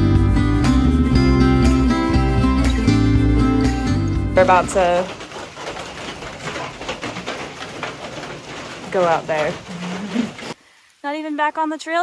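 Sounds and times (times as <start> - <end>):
raindrop taps: 4.4 - 10.6
rain hiss: 10.5 - 11.9.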